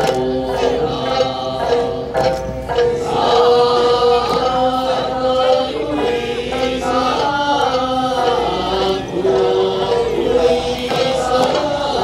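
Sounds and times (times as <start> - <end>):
group singing over a pa: 0.0 - 12.0.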